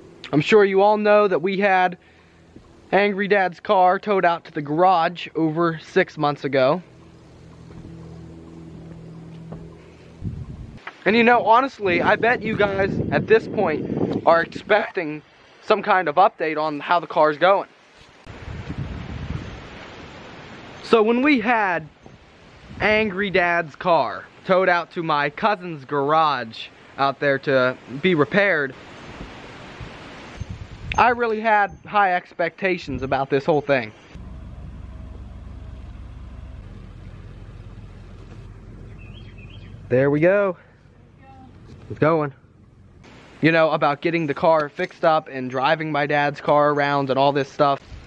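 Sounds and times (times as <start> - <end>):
truck engine rumbling: 0.0 - 10.8, 34.1 - 45.0
bird chirps: 6.8 - 10.7, 36.9 - 39.9
wind buffeting microphone: 6.9 - 8.9, 9.5 - 15.0, 18.3 - 19.8, 22.0 - 23.4, 29.0 - 31.9, 32.8 - 33.2.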